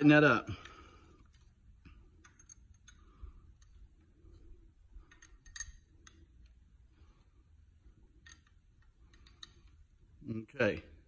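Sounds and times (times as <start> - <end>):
faint metallic wrench clicks: 2.2 - 3.8, 5.0 - 6.6, 8.2 - 9.8.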